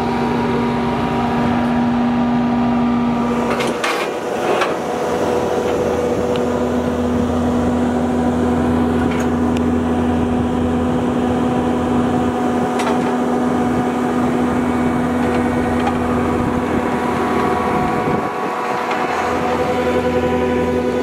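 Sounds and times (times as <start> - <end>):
diesel engine droning: 0.0 - 21.0.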